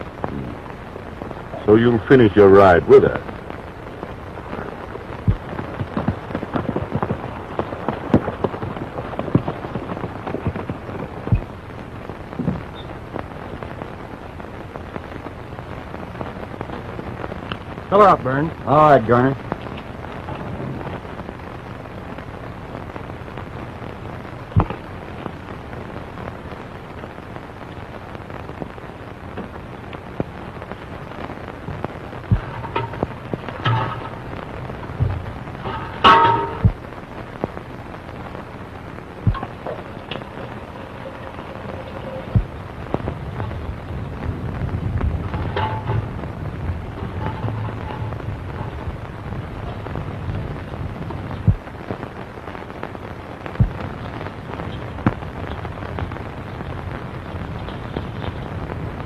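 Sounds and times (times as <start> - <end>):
faint pitched sounds: 0.0 - 59.0
film soundtrack hiss and crackle: 0.0 - 59.0
low hum: 19.4 - 59.0.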